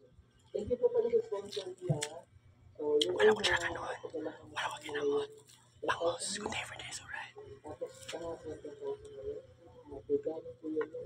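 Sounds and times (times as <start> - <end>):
soft speech and whispering: 0.5 - 11.0.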